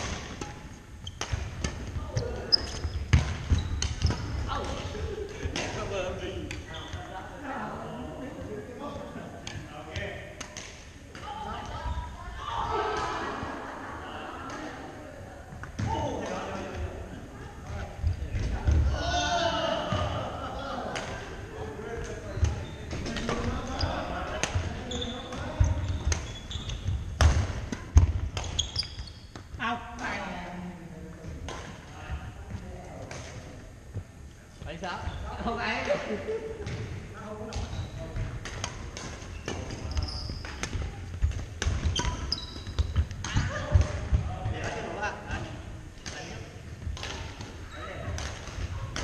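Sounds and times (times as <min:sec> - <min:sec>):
rackets hitting shuttlecock: 0:00.0 - 0:06.9, 0:22.0 - 0:30.1, 0:37.4 - 0:44.9, 0:46.0 - 0:49.0
players' voices: 0:01.4 - 0:28.2.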